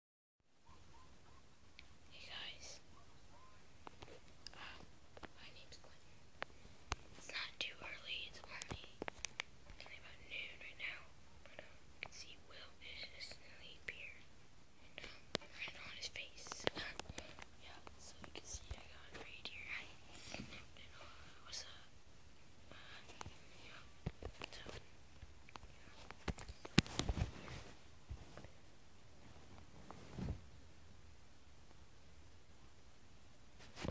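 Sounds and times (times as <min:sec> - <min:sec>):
person whispering: 0:02.1 - 0:03.6, 0:04.5 - 0:06.0, 0:07.2 - 0:09.0, 0:09.8 - 0:21.9, 0:22.7 - 0:24.8.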